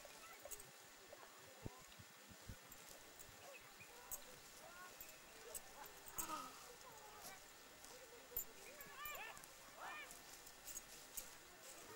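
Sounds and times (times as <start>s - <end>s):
dry stems rustling and crackling: 1.8s - 11.9s
faint high calls: 3.3s - 10.4s.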